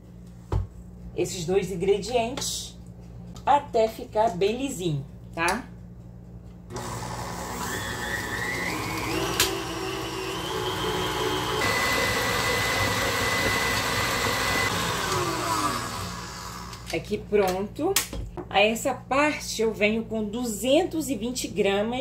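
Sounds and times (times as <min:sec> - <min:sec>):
stand mixer motor whine: 0:06.7 - 0:16.9
mixer click: 0:08.9 - 0:10.2.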